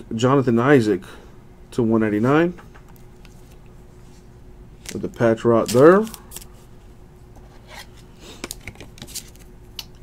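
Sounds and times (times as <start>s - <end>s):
trading cards rustling: 4.8s - 6.6s, 7.7s - 9.5s.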